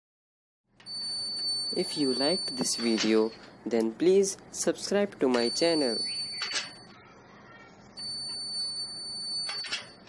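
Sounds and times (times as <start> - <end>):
high-pitched alarm tone: 5.4 - 7.0.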